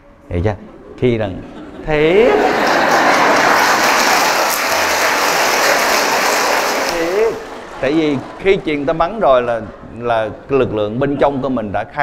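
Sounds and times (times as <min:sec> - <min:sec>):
audience applauding: 0:01.8 - 0:10.9.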